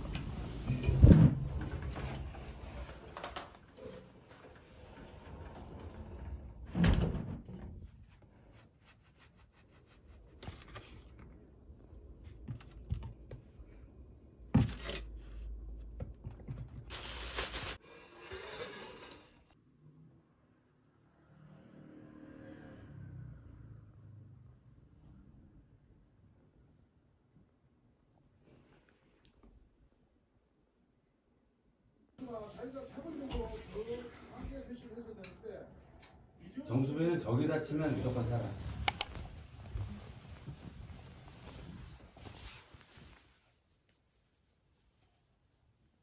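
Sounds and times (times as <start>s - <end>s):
rustling: 37.9s - 45.6s.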